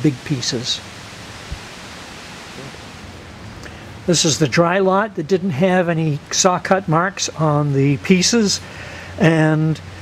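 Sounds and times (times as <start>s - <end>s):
steady background hiss: 0.0s - 10.0s
soft low thump: 1.4s - 1.7s.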